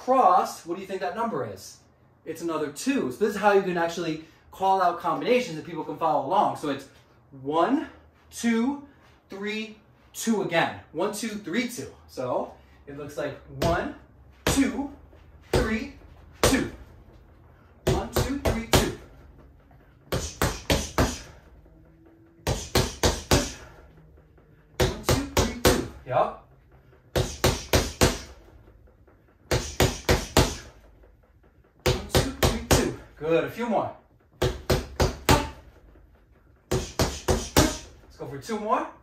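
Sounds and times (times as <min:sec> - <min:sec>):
punches landing on punch bag: 0:34.4 - 0:35.6.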